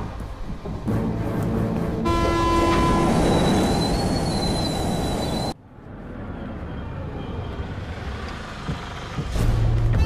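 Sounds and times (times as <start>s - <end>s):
electric train rumbling: 0.0s - 10.0s
train horn: 2.0s - 3.4s
wheels squealing on rails: 2.6s - 5.6s.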